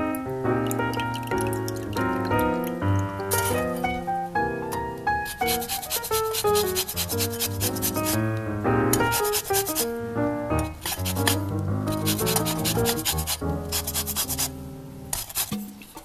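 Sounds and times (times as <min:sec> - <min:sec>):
background guitar music: 0:00.0 - 0:15.2
orange peel scraping on grater: 0:10.8 - 0:14.5, 0:15.1 - 0:15.7.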